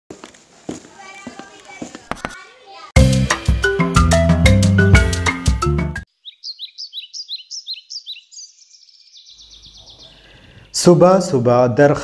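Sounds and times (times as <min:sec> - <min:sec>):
songbird chirping and trilling: 0:06.0 - 0:11.4.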